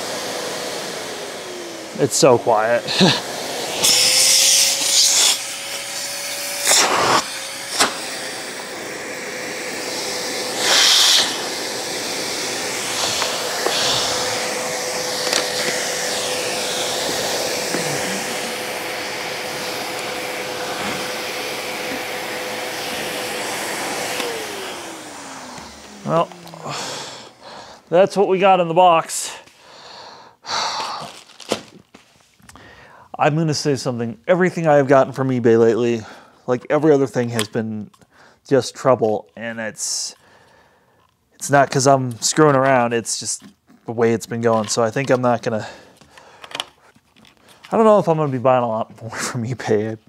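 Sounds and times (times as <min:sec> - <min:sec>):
vacuum cleaner motor running: 0:00.0 - 0:29.4, 0:44.6 - 0:46.7.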